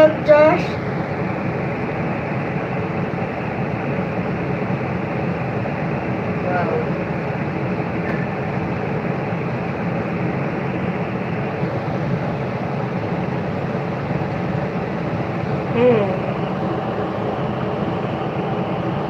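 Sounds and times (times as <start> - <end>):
ferris wheel mechanical hum: 0.0 - 19.0.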